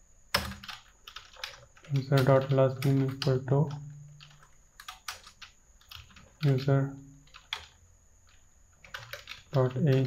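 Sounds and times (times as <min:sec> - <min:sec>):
computer keyboard typing: 0:00.3 - 0:10.0.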